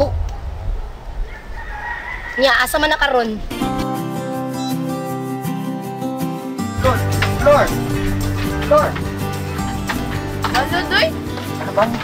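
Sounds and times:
rooster crowing: 1.2 - 2.8.

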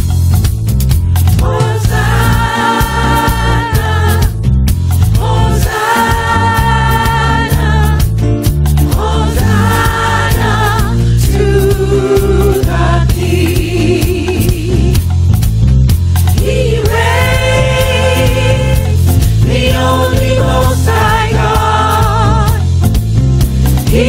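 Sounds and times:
bass line and beat: 0.0 - 24.0
gospel choir singing: 1.3 - 15.0, 16.3 - 22.6, 23.8 - 24.0.

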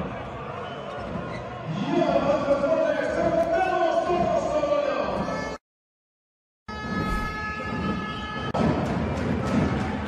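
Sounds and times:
whoosh: 6.8 - 7.5.

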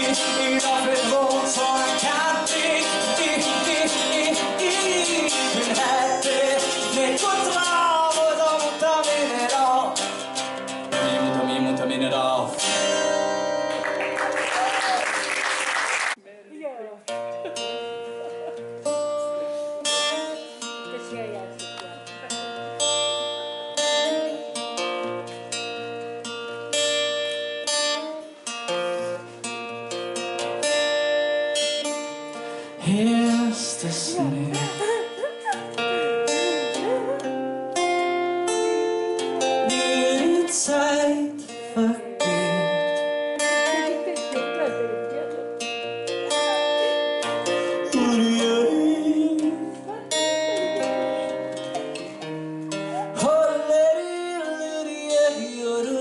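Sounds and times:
fingerstyle acoustic guitar: 0.0 - 14.4, 17.1 - 56.0.

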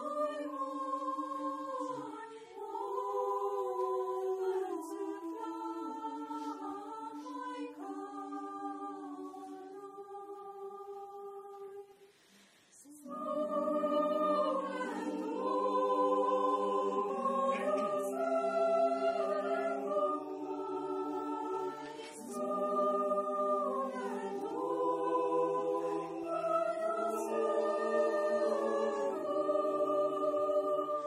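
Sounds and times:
mixed choir singing a cappella: 0.0 - 31.0.

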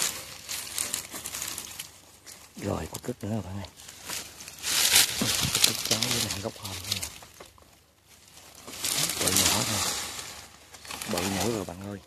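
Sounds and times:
dry brush rustling and crackling: 0.0 - 12.0.

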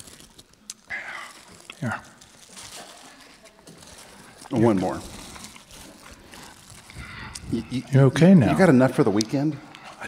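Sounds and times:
plastic wrapper crinkling: 0.0 - 7.8.

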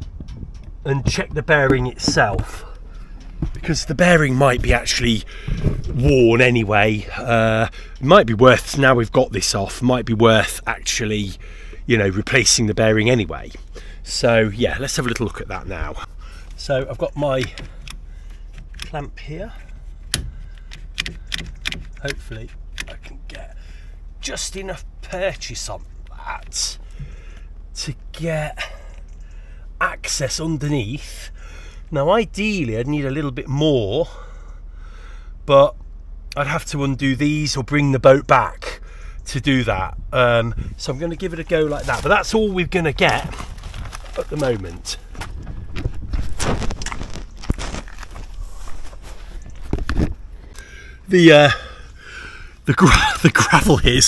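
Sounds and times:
gravel crunching: 0.0 - 31.8, 38.2 - 54.0.

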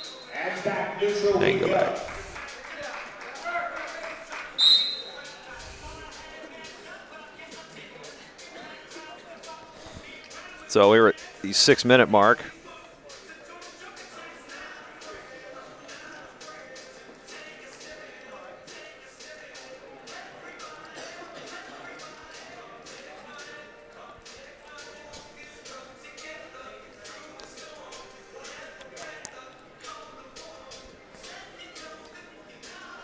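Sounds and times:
voices in a hall: 0.0 - 33.0
referee's whistle blast: 4.6 - 5.2.

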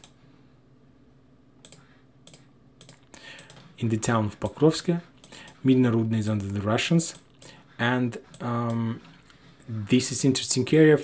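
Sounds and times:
faint room hiss: 0.0 - 11.0
computer mouse clicks: 1.6 - 3.7.

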